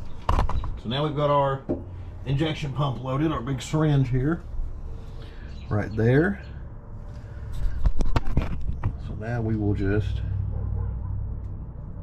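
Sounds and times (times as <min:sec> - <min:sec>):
low steady rumble: 0:00.8 - 0:12.0.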